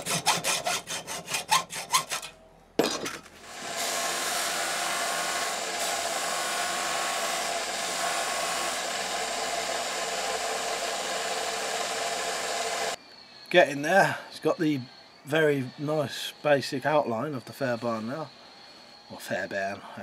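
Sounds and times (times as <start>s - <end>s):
hacksaw cutting steel: 0.0s - 2.4s, 3.5s - 13.0s
belt sander grinding steel: 3.4s - 13.0s.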